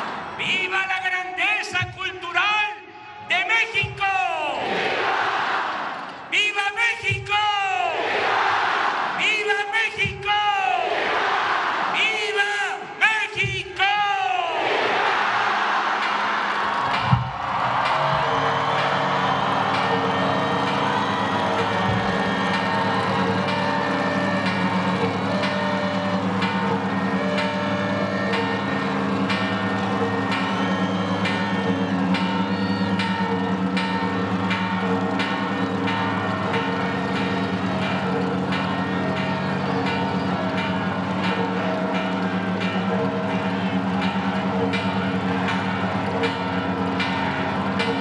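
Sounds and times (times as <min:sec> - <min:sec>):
large bells ringing: 0:15.0 - 0:48.0.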